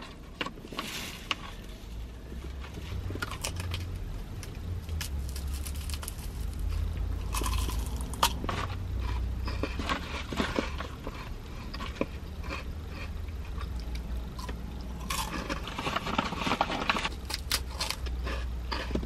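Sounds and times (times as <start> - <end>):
crunching waffle cone: 2.6 - 19.0.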